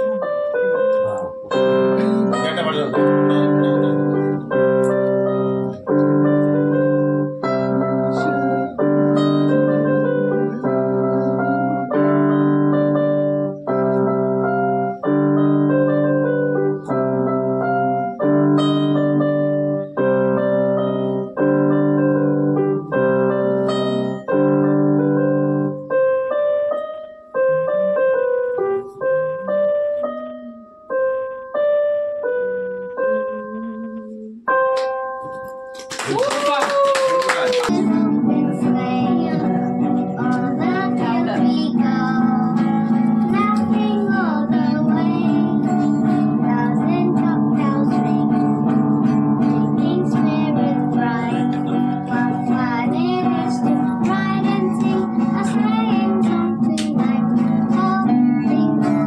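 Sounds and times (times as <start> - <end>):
keyboard chords: 0.0 - 59.0.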